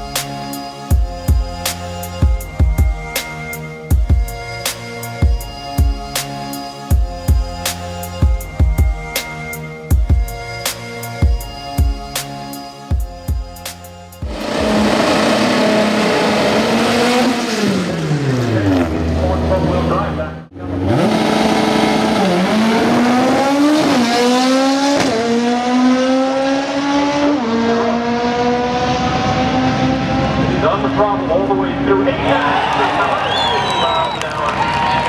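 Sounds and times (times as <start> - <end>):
race car engine revving: 14.2 - 33.9
car accelerating through gears: 14.3 - 19.9, 20.6 - 31.9.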